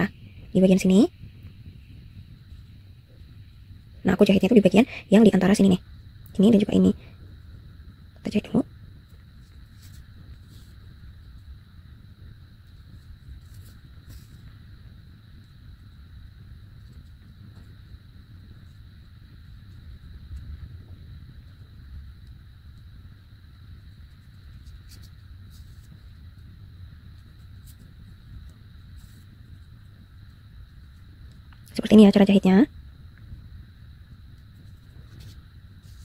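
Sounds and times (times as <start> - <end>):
low rumble: 0.0 - 31.8
steady high-pitched whine: 0.0 - 36.0
yarn and needle rustles: 8.2 - 11.4, 12.6 - 14.7, 34.5 - 36.0.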